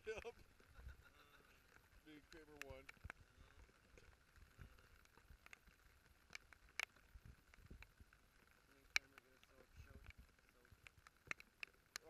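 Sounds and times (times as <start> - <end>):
raindrops ticking: 0.0 - 12.0.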